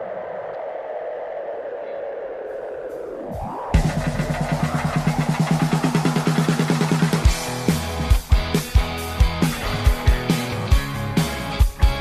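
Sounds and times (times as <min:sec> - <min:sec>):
fast low electronic pulse: 0:00.0 - 0:08.3.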